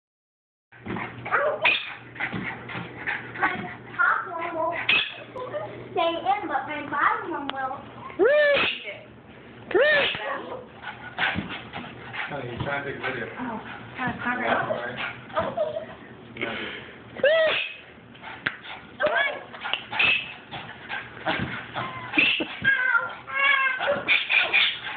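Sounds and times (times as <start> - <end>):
dog whining: 1.3 - 2.1, 4.8 - 5.4, 9.7 - 10.7, 17.2 - 17.9, 19.0 - 24.9
small dog yipping and whimpering: 1.6 - 2.0, 4.9 - 5.3, 21.8 - 24.8.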